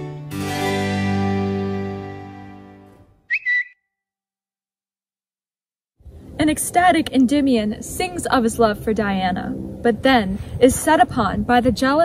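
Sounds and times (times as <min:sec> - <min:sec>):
harpsichord and strings chord: 0:00.0 - 0:02.9
high whistle-like phone chirp: 0:03.3 - 0:03.9.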